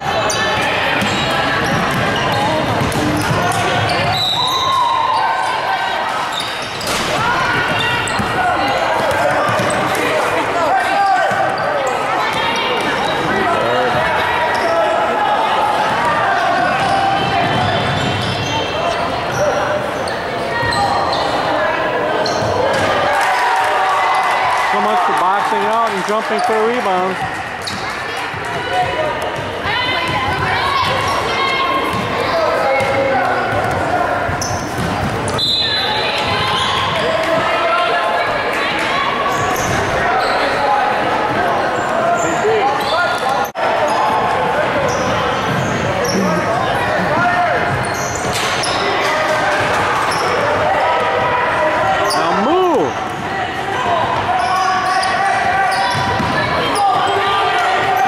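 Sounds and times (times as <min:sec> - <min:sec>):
basketball bouncing: 0:00.6 - 0:04.1, 0:31.8 - 0:32.2, 0:32.8 - 0:35.4, 0:55.9 - 0:56.5.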